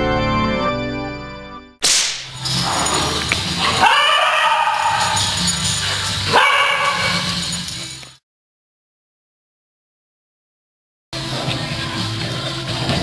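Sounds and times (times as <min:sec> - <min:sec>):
music: 0:00.0 - 0:01.8, 0:02.4 - 0:03.9, 0:05.0 - 0:08.2, 0:11.2 - 0:13.0
small dogs barking: 0:02.5 - 0:07.7.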